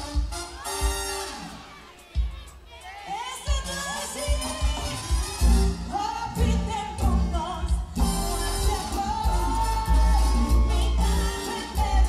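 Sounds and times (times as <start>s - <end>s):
conga drums: 0.0s - 12.0s
live band music: 0.0s - 12.0s
person singing: 2.0s - 12.0s
pulsing bass: 5.4s - 12.0s.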